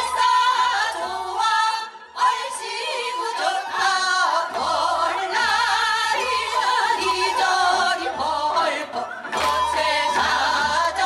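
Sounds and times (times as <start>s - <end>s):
women singing folk song: 0.0s - 11.0s.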